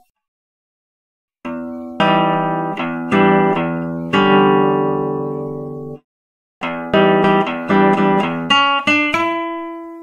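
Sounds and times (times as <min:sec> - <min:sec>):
classical guitar chords: 0:01.5 - 0:06.0, 0:06.6 - 0:10.0.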